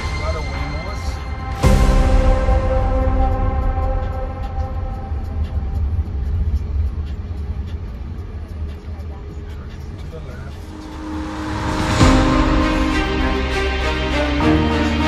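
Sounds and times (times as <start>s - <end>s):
background music: 0.0s - 15.0s
low car cabin rumble: 3.3s - 13.2s.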